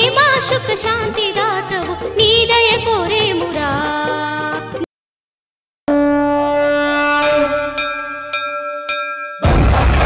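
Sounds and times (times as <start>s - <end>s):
conch shell blown: 5.9s - 8.4s.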